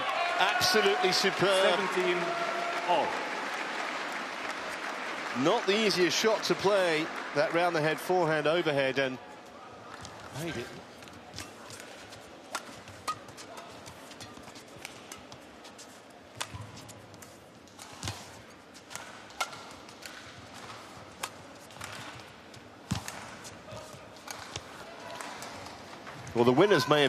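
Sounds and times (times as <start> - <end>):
racket striking shuttlecock: 16.3 - 22.2, 22.8 - 25.5.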